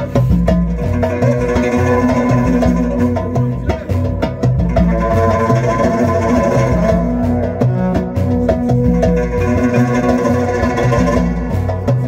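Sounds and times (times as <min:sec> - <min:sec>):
bowed violin: 0:00.0 - 0:12.0
plucked guitar: 0:00.0 - 0:12.0
repeating bass line: 0:00.0 - 0:12.0.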